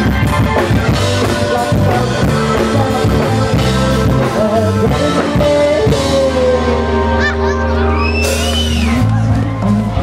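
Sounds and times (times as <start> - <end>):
live rock band music: 0.0 - 10.0.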